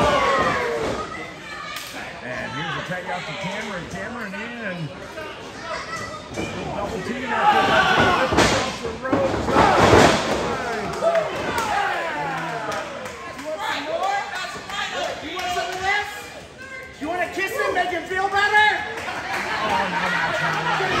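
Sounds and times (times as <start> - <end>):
crowd shouting: 0.0 - 1.8.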